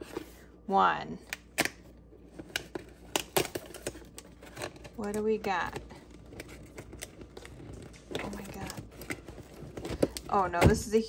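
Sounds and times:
cardboard tearing and clicks: 2.4s - 10.2s.

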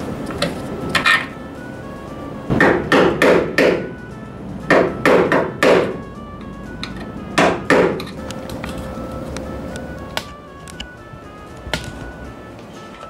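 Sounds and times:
hammer knocking on metal: 2.5s - 3.9s, 4.7s - 6.0s, 7.4s - 8.1s.

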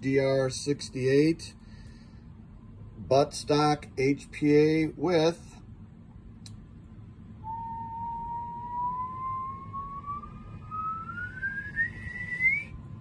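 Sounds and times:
rising whistle-like tone: 7.4s - 13.0s.

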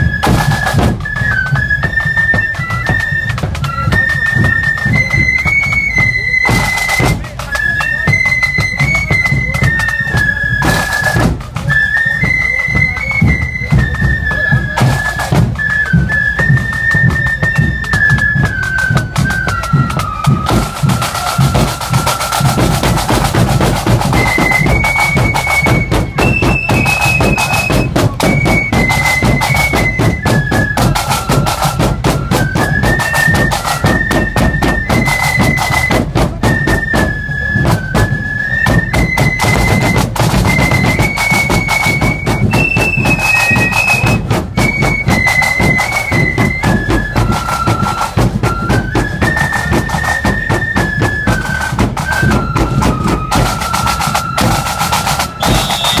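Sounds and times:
flutes playing a tune: 0.0s - 56.0s
snare drums: 0.0s - 56.0s.

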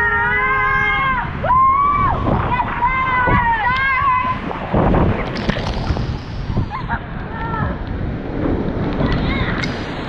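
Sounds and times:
water rushing and splashing: 0.0s - 10.0s.

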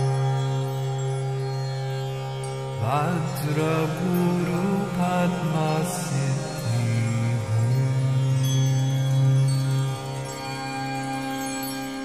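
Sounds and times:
steady drone: 0.0s - 12.0s
mantra chanting: 2.8s - 10.0s.

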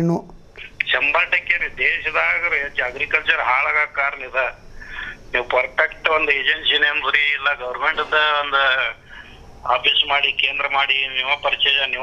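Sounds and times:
man speaking: 0.6s - 12.0s
person speaking over telephone: 0.6s - 12.0s.

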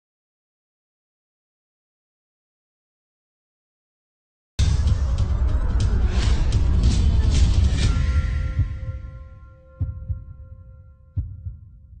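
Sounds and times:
heartbeat thumps: 4.6s - 12.0s.

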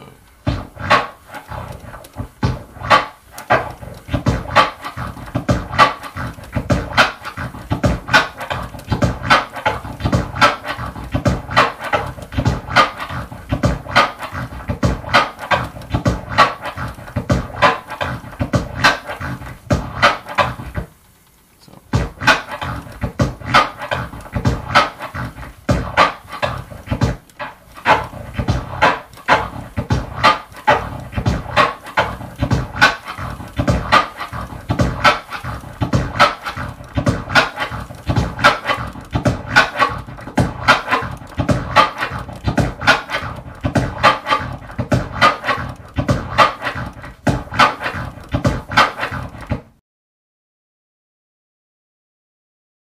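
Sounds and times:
turntable scratching: 0.0s - 49.8s.

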